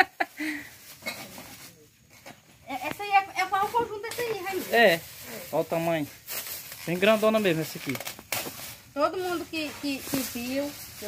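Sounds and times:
plastic bag rustling: 2.7 - 11.0.

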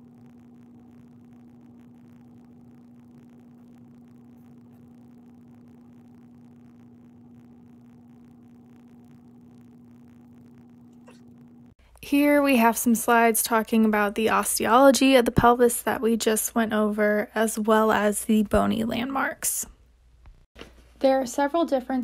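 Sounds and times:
low hum: 0.0 - 16.2.

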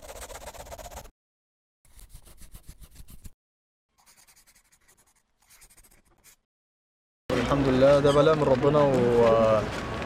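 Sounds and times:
pencil scribbling: 0.0 - 1.1, 1.9 - 6.4.

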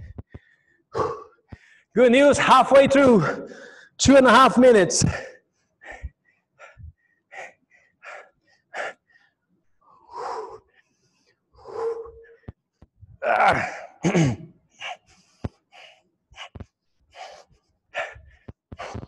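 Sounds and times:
man panting hard: 3.2 - 4.0, 5.1 - 9.4, 10.0 - 12.5, 14.7 - 19.0.

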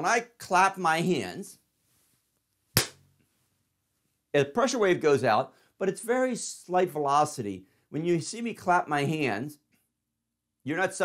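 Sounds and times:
hand clap: 2.8 - 3.0.

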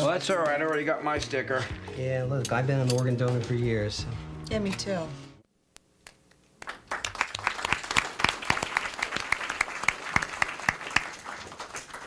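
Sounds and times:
audience applauding: 6.6 - 12.0.

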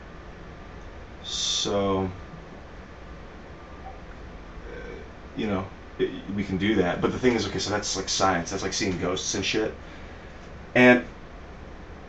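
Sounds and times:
faint hiss: 0.0 - 11.2
low hum: 0.0 - 12.0.

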